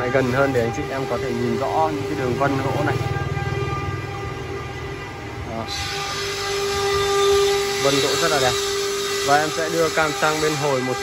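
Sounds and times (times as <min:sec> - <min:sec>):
power tool hiss: 0:05.6 - 0:11.0.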